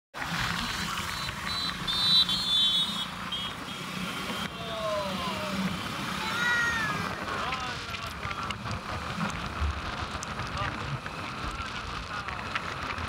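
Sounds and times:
vehicle road and engine noise: 0.1s - 13.0s
multi-tone vehicle horn blasts: 0.6s - 4.6s.

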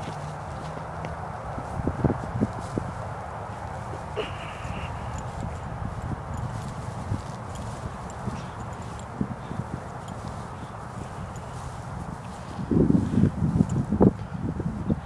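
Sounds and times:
people grappling on grass: 0.0s - 14.8s
background noise rush: 0.0s - 14.9s.

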